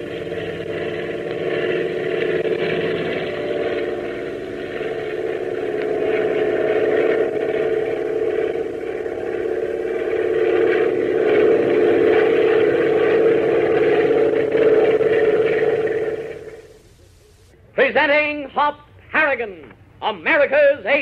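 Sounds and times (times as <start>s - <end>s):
propeller aeroplane engine droning: 0.0s - 21.0s.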